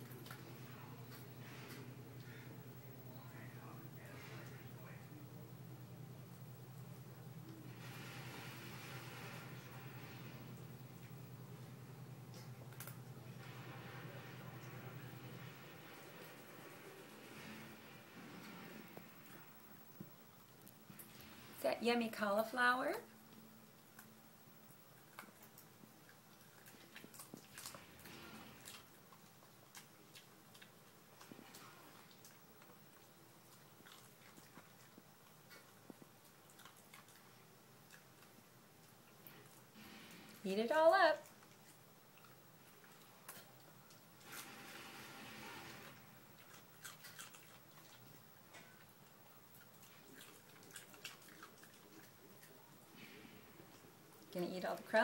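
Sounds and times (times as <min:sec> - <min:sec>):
dog chewing cauliflower: 0:00.0 - 0:21.6, 0:23.2 - 0:40.6, 0:41.2 - 0:55.0.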